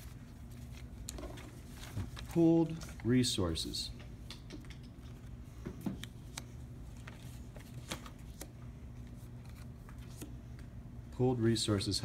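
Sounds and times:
paper rustling: 0:00.0 - 0:03.2, 0:06.0 - 0:10.4.

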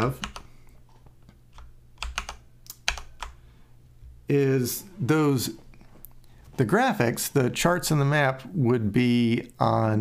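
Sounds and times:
computer keyboard keys clicking: 0:00.1 - 0:00.5, 0:01.5 - 0:03.4.

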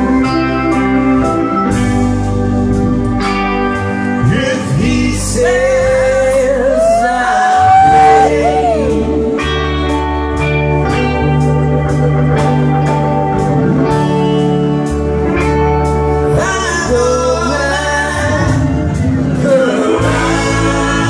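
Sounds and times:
bass: 0:00.0 - 0:21.0
drums: 0:00.0 - 0:21.0
electric guitars: 0:00.0 - 0:21.0
organ: 0:00.0 - 0:21.0
singing: 0:04.3 - 0:09.5, 0:19.3 - 0:21.0.

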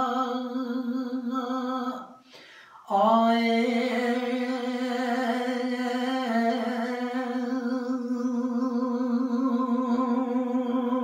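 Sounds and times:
man singing unaccompanied: 0:00.0 - 0:02.2, 0:02.8 - 0:11.0.

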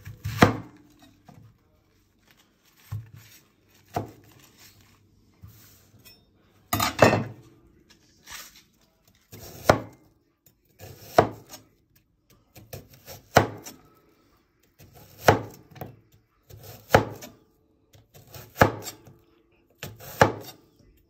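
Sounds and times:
cleaver chopping vegetable: 0:00.0 - 0:00.8, 0:03.7 - 0:04.4, 0:09.3 - 0:10.0, 0:10.8 - 0:11.6, 0:12.5 - 0:13.8, 0:14.8 - 0:15.6, 0:16.5 - 0:17.3, 0:18.1 - 0:19.0, 0:19.8 - 0:20.6.

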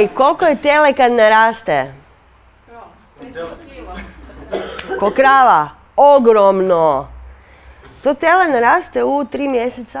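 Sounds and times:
cough: 0:04.0 - 0:05.3.

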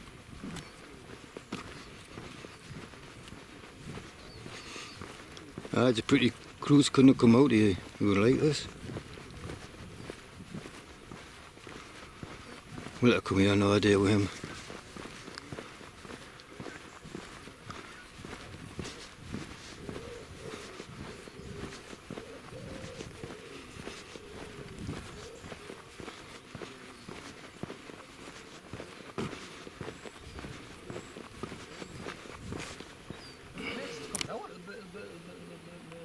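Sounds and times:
footsteps on tarmac: 0:00.0 - 0:35.2.

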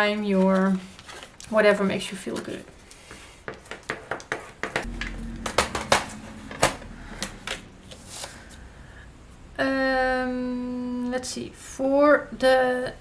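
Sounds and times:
faint low hum: 0:04.9 - 0:11.1.

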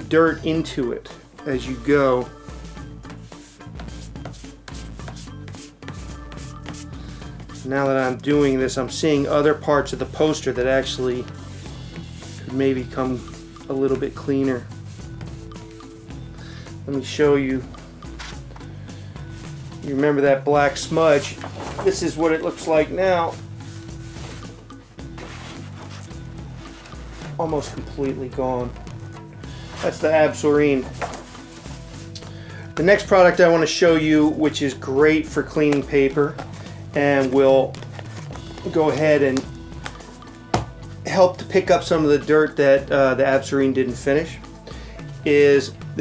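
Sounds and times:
soft background music: 0:00.0 - 0:46.0
putty scuffing on paper: 0:03.1 - 0:06.9, 0:21.1 - 0:22.2, 0:23.3 - 0:27.8, 0:30.8 - 0:32.2.

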